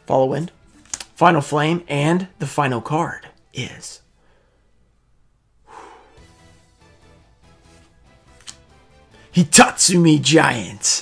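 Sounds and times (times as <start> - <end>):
man sighing: 5.7 - 6.3.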